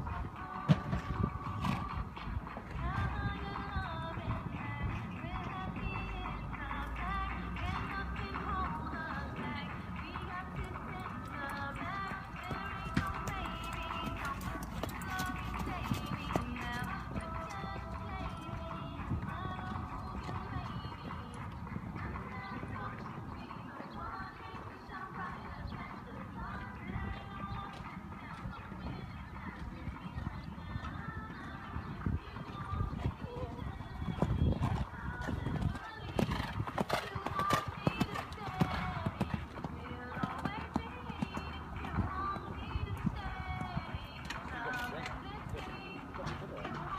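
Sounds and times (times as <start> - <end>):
background music: 0.0 - 46.9
horse hoofbeats on sand: 0.0 - 46.9.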